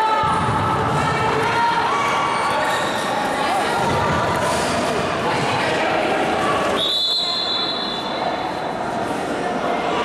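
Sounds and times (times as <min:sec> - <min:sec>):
echoing indoor court noise: 0:00.0 - 0:10.0
referee's whistle blast: 0:06.8 - 0:08.1.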